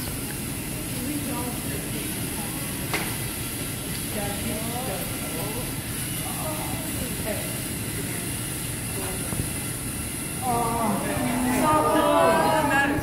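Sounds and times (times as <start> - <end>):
children chattering: 10.4 - 13.0.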